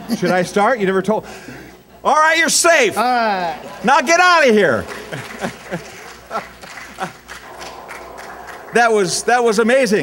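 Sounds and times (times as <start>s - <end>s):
laughter in a large hall: 3.4s - 4.1s, 4.7s - 7.4s.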